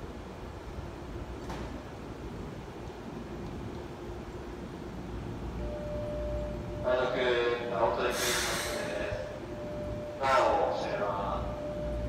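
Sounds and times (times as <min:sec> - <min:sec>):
faint steady tone: 0:05.5 - 0:08.2, 0:08.8 - 0:12.0
compressed air hiss from train: 0:08.0 - 0:09.4.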